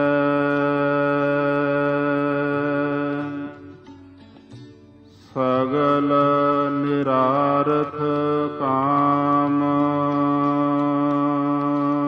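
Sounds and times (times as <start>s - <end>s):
person singing devotional song: 0.0s - 4.4s, 5.1s - 12.0s
harmonium drone: 0.0s - 12.0s.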